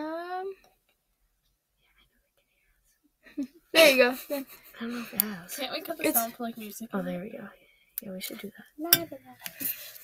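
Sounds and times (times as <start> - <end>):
person speaking: 8.0 - 9.8.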